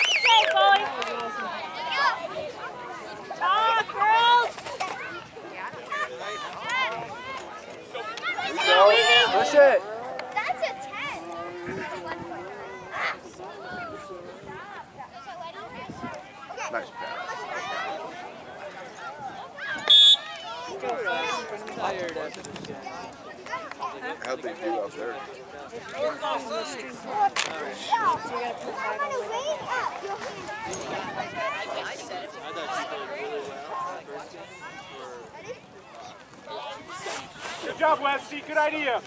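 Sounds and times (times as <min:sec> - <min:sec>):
voices calling across field: 0:00.0 - 0:39.0
people shouting on a field: 0:05.8 - 0:21.6
referee's whistle blast: 0:19.8 - 0:20.3.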